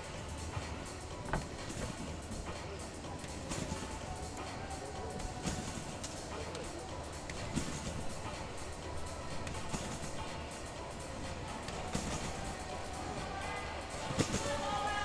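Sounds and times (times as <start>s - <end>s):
background music: 0.0s - 15.0s
spectators chattering: 2.2s - 15.0s.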